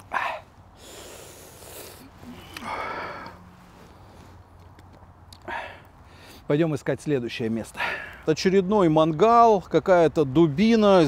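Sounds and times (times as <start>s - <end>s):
man sniffing: 0.0s - 4.4s
man exhaling hard: 0.1s - 3.4s, 5.4s - 6.4s.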